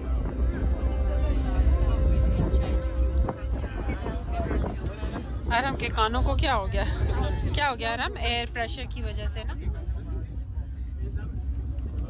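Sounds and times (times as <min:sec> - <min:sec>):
cable car cabin rumble: 0:00.0 - 0:12.0
faint voices: 0:00.0 - 0:12.0.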